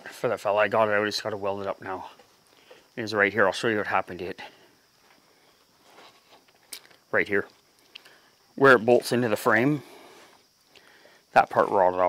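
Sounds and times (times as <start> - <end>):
footsteps on dirt floor: 5.0 - 6.9.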